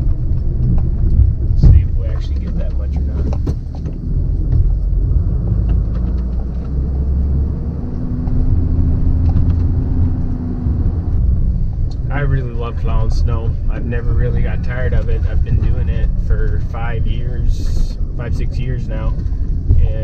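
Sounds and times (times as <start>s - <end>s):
truck engine rumble from inside: 0.0s - 20.0s.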